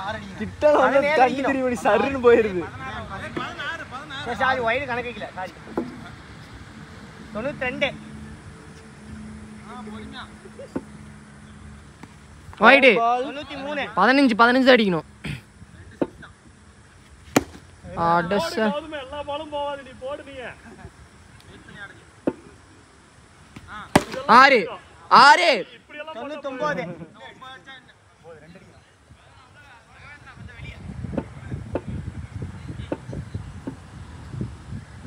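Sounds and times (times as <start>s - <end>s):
cricket bat cracking ball: 17.3s - 17.6s, 23.5s - 24.3s.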